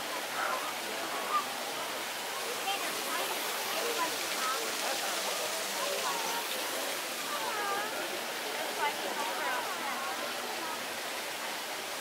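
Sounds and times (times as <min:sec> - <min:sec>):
faint indistinct voices: 0:00.0 - 0:12.0
running water: 0:00.0 - 0:12.0.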